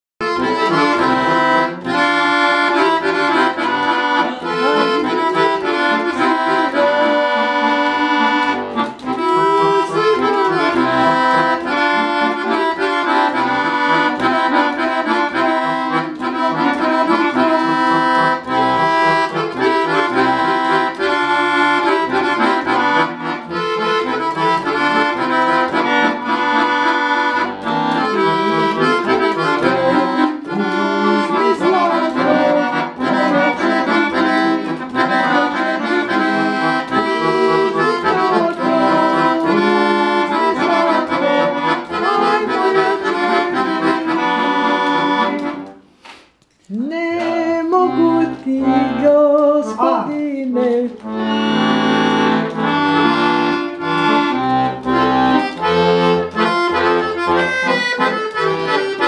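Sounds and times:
piano accordion tune: 0:00.2 - 0:46.2, 0:46.9 - 0:59.0.

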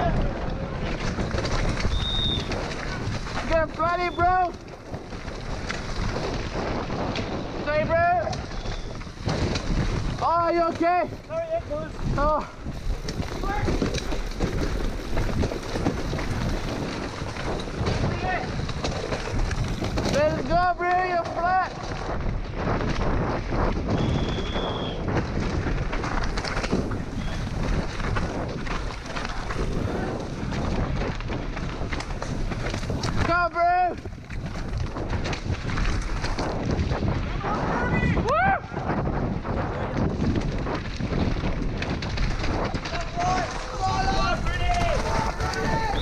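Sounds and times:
mountain bike rattling: 0:00.0 - 0:46.0
wind rushing over camera: 0:00.0 - 0:46.0
people shouting: 0:37.4 - 0:38.8, 0:43.0 - 0:46.0
high shouted whoops: 0:38.2 - 0:38.7.

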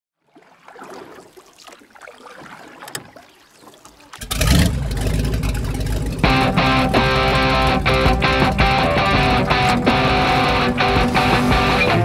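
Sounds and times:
water noise: 0:00.2 - 0:12.0
motorboat engine running: 0:03.9 - 0:12.0.

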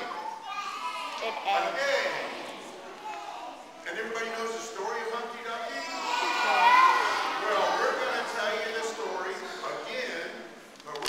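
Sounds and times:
children talking: 0:00.0 - 0:10.5.

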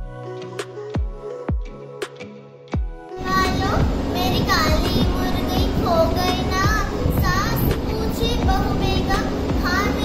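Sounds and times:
girl chanting: 0:03.2 - 0:10.0.

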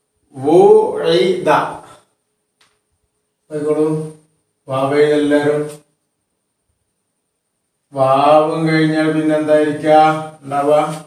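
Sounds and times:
man chanting held syllables: 0:00.3 - 0:02.0, 0:03.5 - 0:05.8, 0:07.9 - 0:11.0.

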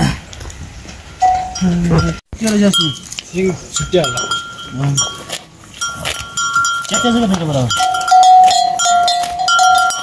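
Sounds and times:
cow bells clinking: 0:01.2 - 0:10.0.

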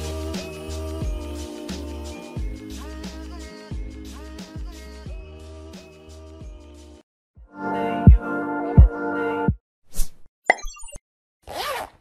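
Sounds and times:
quick swish: 0:09.9 - 0:10.3.

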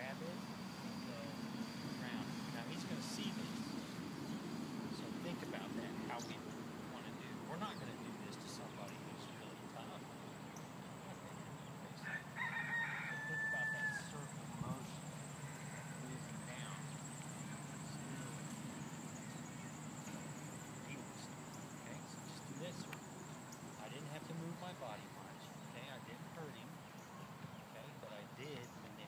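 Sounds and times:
low background hum: 0:00.0 - 0:29.0
rooster crowing: 0:12.0 - 0:16.6.

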